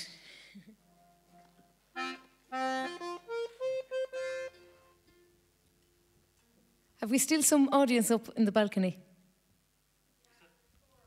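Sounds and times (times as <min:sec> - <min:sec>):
button accordion playing: 0:01.9 - 0:04.8.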